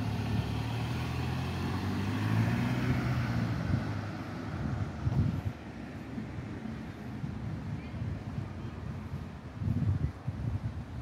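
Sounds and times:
vehicle passing close by: 0.0s - 5.5s
wind thumps on microphone: 3.5s - 5.6s, 7.3s - 11.0s.

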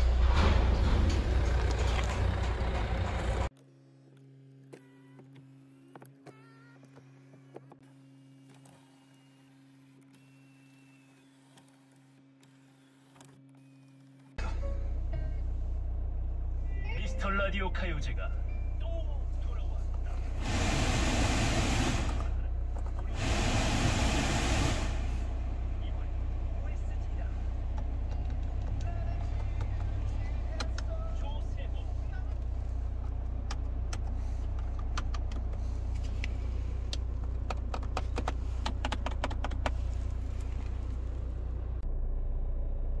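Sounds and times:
car engine idling: 0.0s - 3.5s, 14.4s - 43.0s
bursts of rushing noise: 20.4s - 22.4s, 23.1s - 25.5s.

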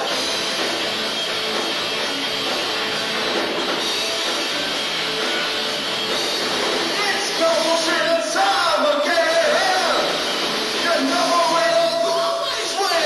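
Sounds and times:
bass guitar: 0.0s - 12.8s
drum kit: 0.0s - 13.0s
electric guitars: 0.0s - 13.0s.

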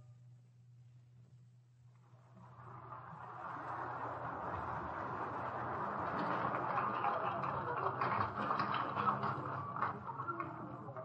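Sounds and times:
low recording hum: 0.0s - 11.0s
audience applauding: 2.2s - 11.0s.

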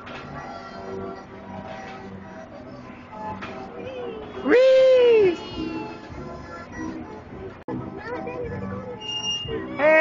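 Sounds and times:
carousel music: 0.0s - 10.0s
high-pitched squeal: 9.0s - 9.8s.

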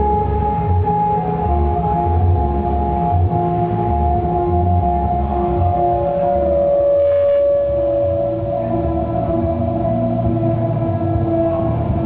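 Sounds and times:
electric guitar: 0.0s - 12.0s
electronic backing with pulsing bass: 0.0s - 12.0s
long held note: 2.0s - 11.7s.

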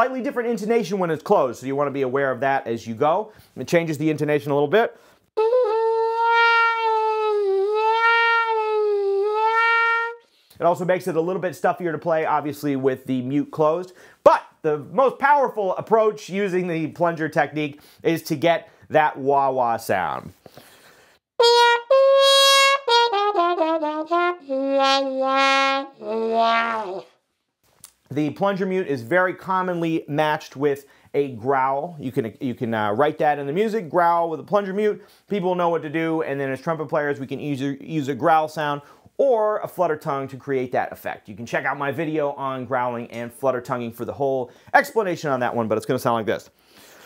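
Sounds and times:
muted trumpet long note: 5.4s - 10.2s, 21.4s - 27.1s.

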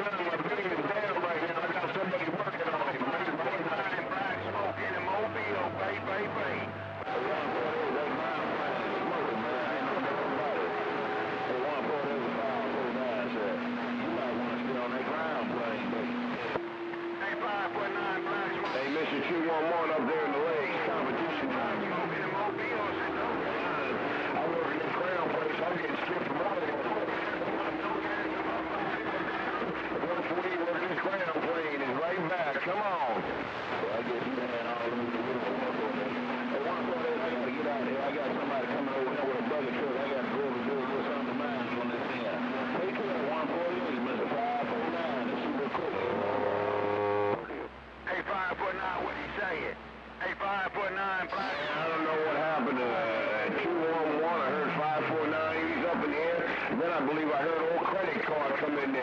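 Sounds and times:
heterodyne tones: 2.3s - 31.7s
garbled voices over radio: 17.2s - 59.0s.

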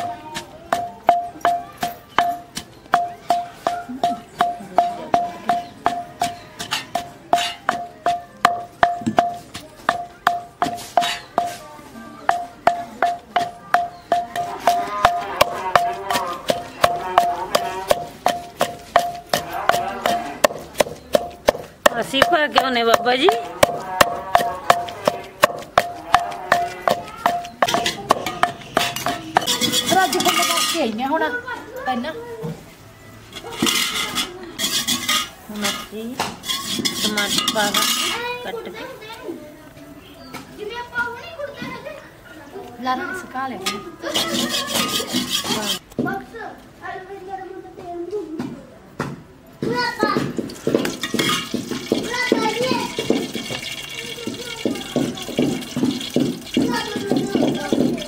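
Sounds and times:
pestle pounding in clay mortar: 0.0s - 31.0s, 33.4s - 38.3s, 43.6s - 46.2s, 49.0s - 58.0s.

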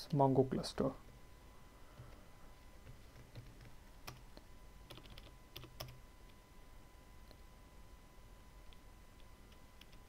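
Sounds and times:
faint keyboard typing: 1.9s - 2.2s, 2.8s - 6.4s, 8.6s - 10.0s.

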